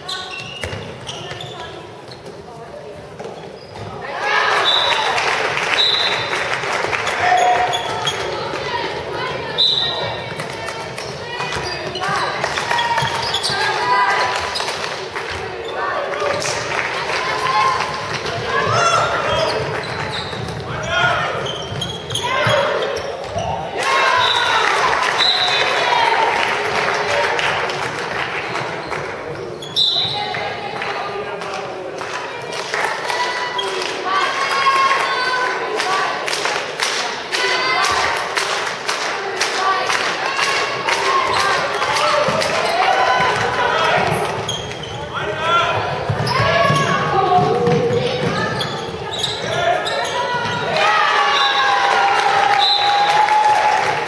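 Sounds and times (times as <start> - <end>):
ball bouncing on hall floor: 0.3 - 2.4, 45.8 - 49.5
high-pitched shoe squeaks: 29.6 - 30.3.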